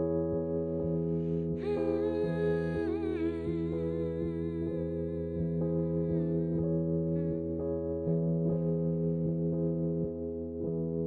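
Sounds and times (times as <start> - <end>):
sustained keyboard chords: 0.0 - 11.0
woman humming a melody: 1.6 - 7.5.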